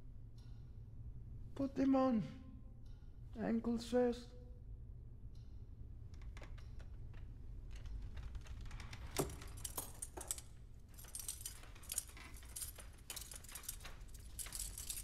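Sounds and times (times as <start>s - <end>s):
low steady hum: 0.0s - 15.0s
metal pieces jangling: 9.1s - 15.0s.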